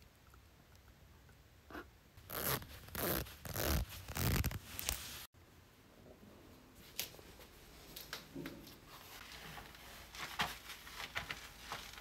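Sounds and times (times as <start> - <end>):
zipper being pulled: 1.7 - 5.2
clothing rustling: 2.2 - 5.3, 6.8 - 12.0.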